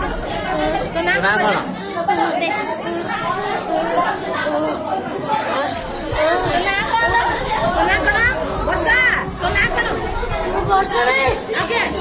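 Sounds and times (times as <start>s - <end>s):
hubbub of overlapping voices: 0.0s - 12.0s.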